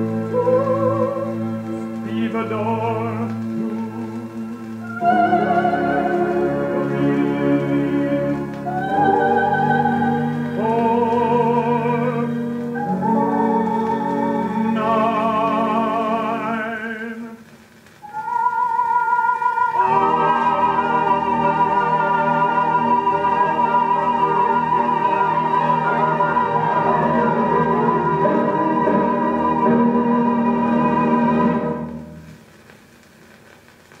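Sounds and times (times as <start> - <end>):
orchestral music record: 0.0 - 34.0.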